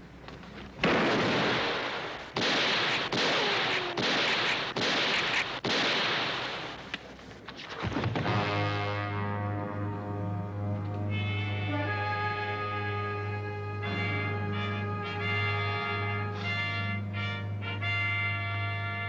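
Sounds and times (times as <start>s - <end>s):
gunshots echoing: 0.8s - 8.6s
orchestral music with brass: 8.2s - 19.0s.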